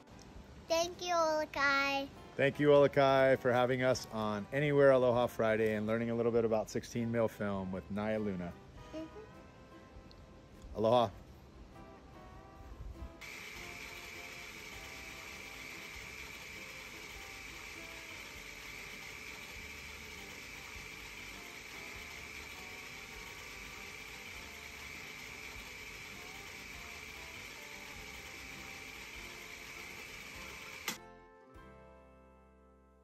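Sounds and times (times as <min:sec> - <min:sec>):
film projector whirring: 0:13.2 - 0:31.0
machine stopping click: 0:13.2 - 0:31.0.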